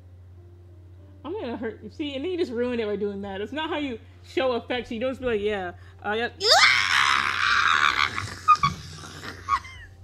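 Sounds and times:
person screaming: 6.4 - 9.7.

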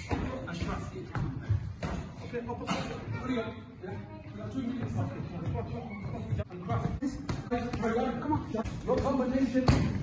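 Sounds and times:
voices talking in a hall: 0.0 - 10.0.

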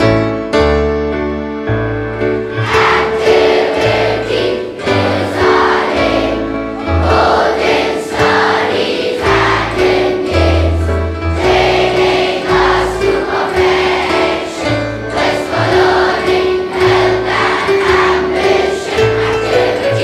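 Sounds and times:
choir singing slow song: 2.5 - 20.0.

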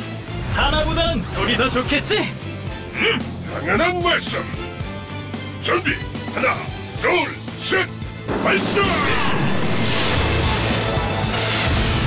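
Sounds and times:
action background music: 0.0 - 12.0.

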